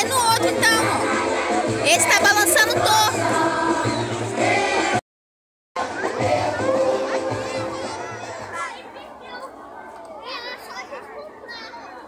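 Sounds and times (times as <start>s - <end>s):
group of voices singing: 0.0s - 5.0s, 5.8s - 8.6s.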